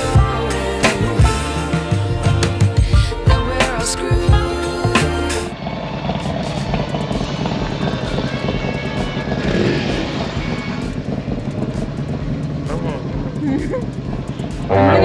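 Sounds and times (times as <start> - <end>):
motorcycles riding past: 5.6 - 15.0.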